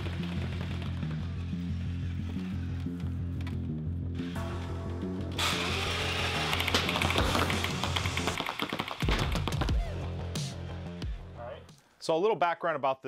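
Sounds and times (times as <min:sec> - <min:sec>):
background music with bass line: 0:00.0 - 0:08.4, 0:09.0 - 0:11.8.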